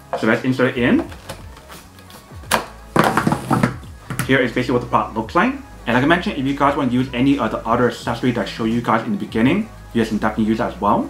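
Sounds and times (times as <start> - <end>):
plastic handling noise: 3.0 - 4.3.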